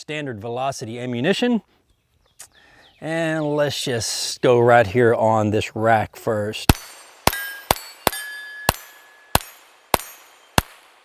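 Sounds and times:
steel plate ringing: 6.7s - 10.6s
pistol shots: 6.7s - 11.0s.

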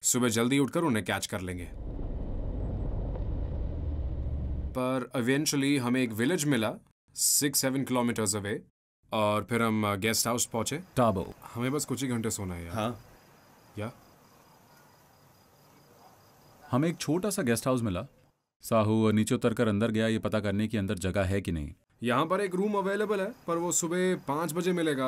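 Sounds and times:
car engine rumble: 1.7s - 4.8s
cricket chirping: 10.6s - 17.1s, 22.3s - 25.0s.

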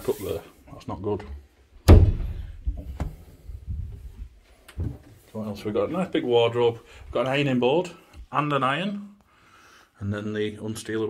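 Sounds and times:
sharp knock: 1.9s - 2.4s
soft low thumps: 1.9s - 5.0s.

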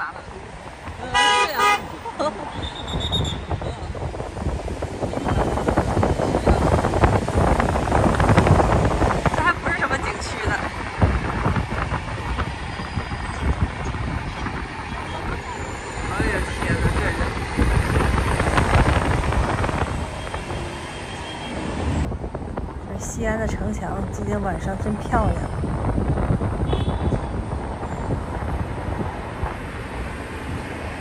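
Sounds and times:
traffic rumble of tyres and engines: 0.0s - 31.0s
vehicles passing: 0.0s - 31.0s.

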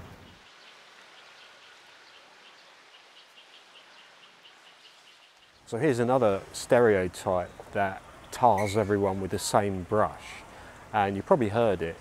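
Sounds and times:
soft background hiss: 0.0s - 12.0s
thin high chirp: 8.5s - 9.0s.

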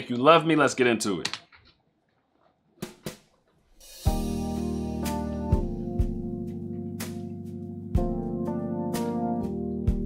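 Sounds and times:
music: 3.8s - 10.0s.

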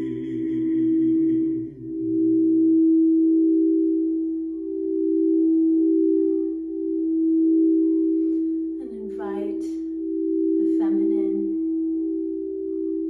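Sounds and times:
singing bowls ringing: 0.0s - 13.0s.

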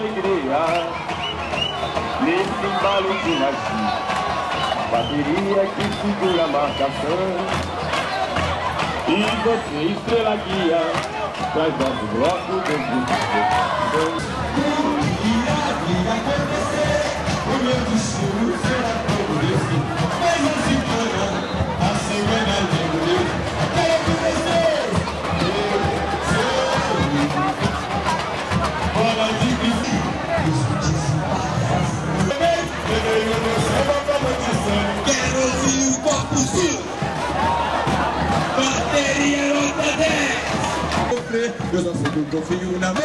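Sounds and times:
large crowd noise: 0.0s - 43.0s
samba drums: 0.0s - 43.0s
person singing samba: 8.5s - 36.9s.

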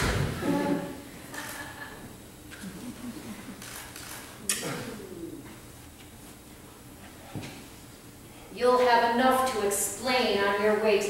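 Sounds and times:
person moaning low: 0.4s - 2.0s, 4.4s - 5.6s.

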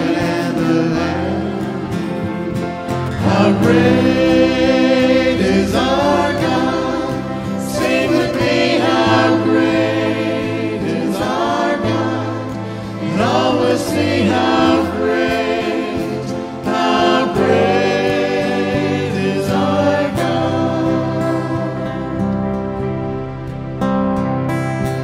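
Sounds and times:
group singing worship song: 0.0s - 22.9s
held chords: 0.0s - 25.0s
steady bass accompaniment: 0.0s - 25.0s.

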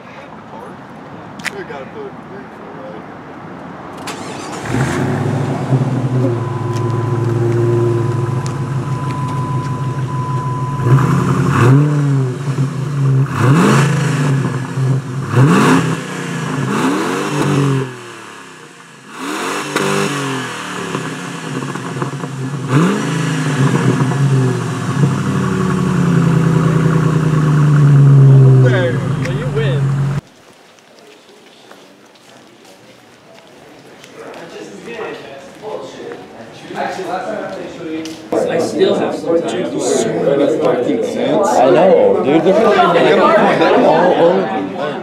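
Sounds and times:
car engine idling and revving: 4.0s - 30.2s.

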